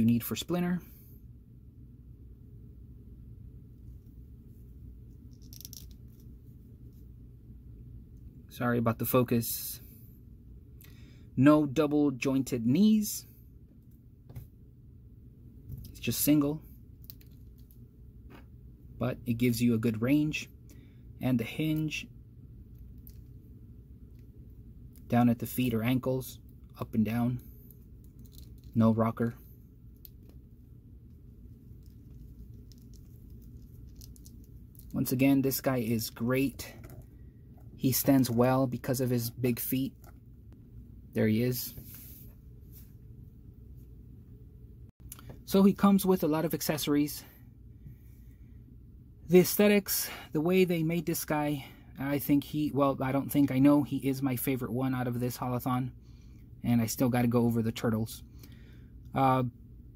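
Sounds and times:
low steady hum: 0.0s - 59.9s
plastic action figure clicks and rustles: 5.3s - 6.4s, 28.1s - 28.8s, 31.8s - 35.0s.

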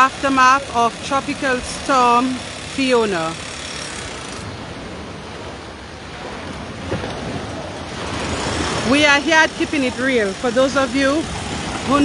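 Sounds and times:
small waves washing onto beach: 0.0s - 12.0s.

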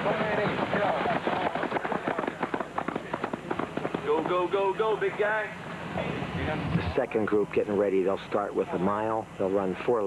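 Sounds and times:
runners' footfalls on track: 0.0s - 4.7s.

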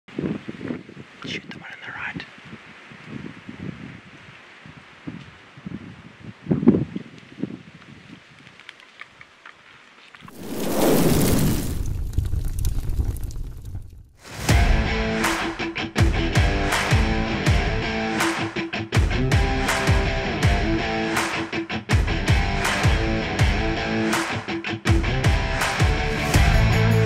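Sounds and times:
whoosh and boom: 10.3s - 15.0s
rock music with guitar: 14.5s - 27.0s.

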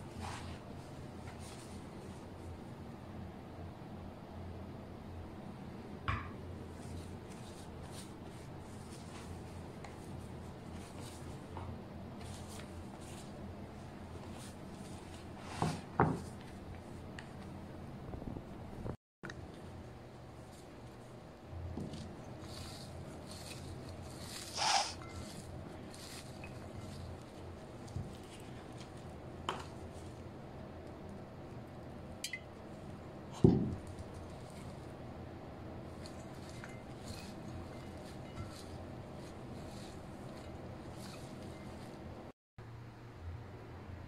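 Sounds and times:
knock on plate: 6.1s - 6.4s
hands rustling salad on plate: 21.9s - 30.2s, 33.7s - 35.0s, 35.8s - 42.1s.

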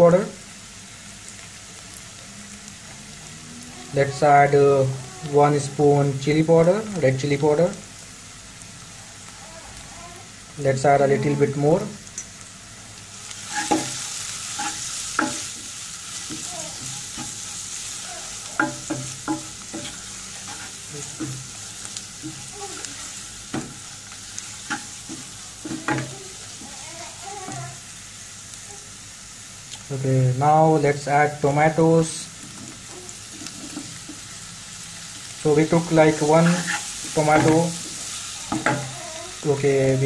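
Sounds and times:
onions frying in hot oil: 0.0s - 40.0s
wooden spoon scraping a pan: 13.4s - 26.8s, 32.4s - 34.3s, 36.1s - 39.0s.

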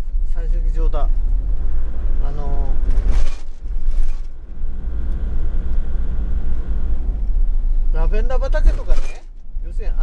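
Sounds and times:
engine rumble inside vehicle: 0.0s - 10.0s.

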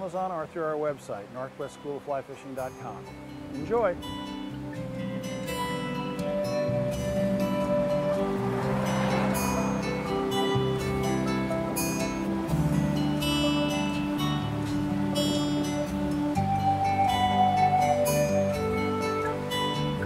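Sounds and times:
acoustic guitar music: 0.0s - 20.0s.

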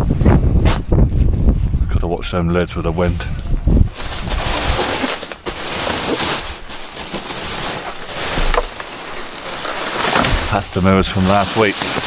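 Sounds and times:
plastic bags rustling: 3.8s - 12.0s
cardboard box scraping: 4.0s - 6.7s, 7.3s - 12.0s.

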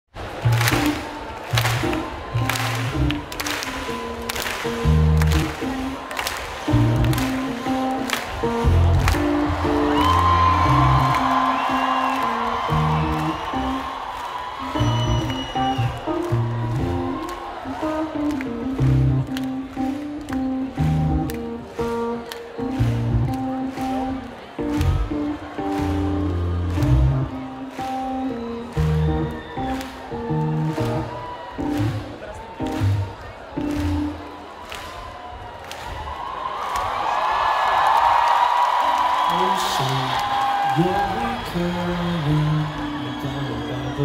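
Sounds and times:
live electronic music: 0.2s - 34.9s
audience cheering: 0.2s - 44.0s.

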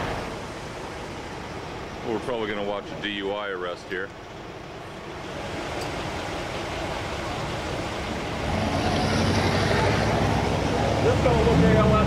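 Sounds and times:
street noise rumble and hiss: 0.0s - 12.0s.

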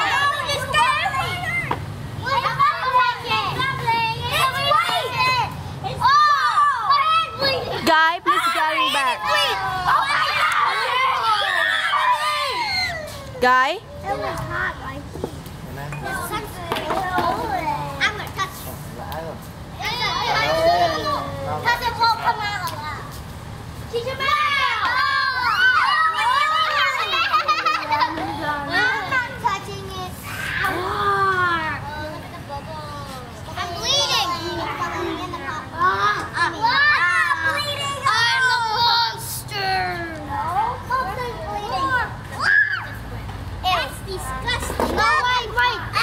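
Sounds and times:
young children talking: 0.0s - 46.0s
children crying out: 4.3s - 14.2s, 24.2s - 28.2s, 30.2s - 31.8s, 41.9s - 43.1s.

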